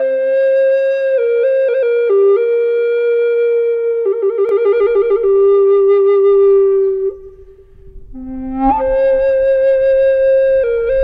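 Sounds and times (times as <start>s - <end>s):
flute holding long note: 0.0s - 11.0s.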